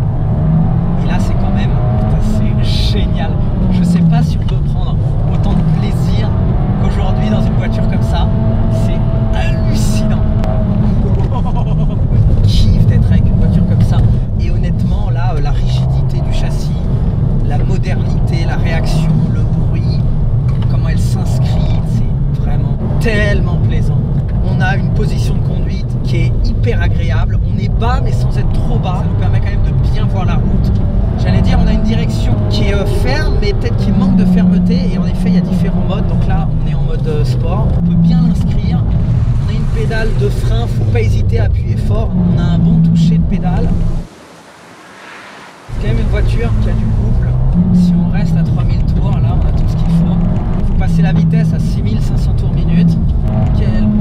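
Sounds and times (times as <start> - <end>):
car engine and exhaust revving: 0.0 - 54.0.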